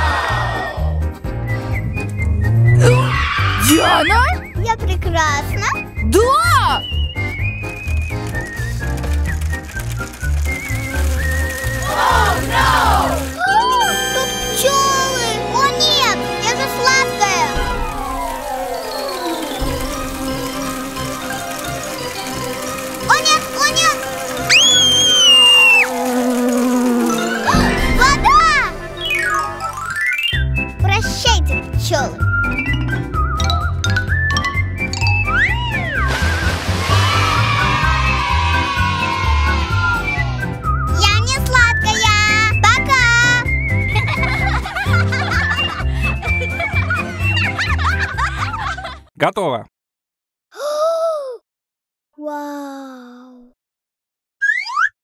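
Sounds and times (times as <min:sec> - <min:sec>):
children's background music: 0:00.0 - 0:25.7, 0:27.1 - 0:47.8
cartoon bee buzzing: 0:08.3 - 0:15.2, 0:17.4 - 0:29.6
high whistle-like tone: 0:24.5 - 0:25.9.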